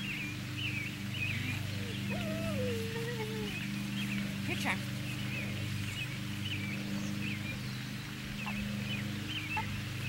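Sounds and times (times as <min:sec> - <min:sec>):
birds chirping: 0:00.0 - 0:10.0
low droning hum: 0:00.0 - 0:10.0.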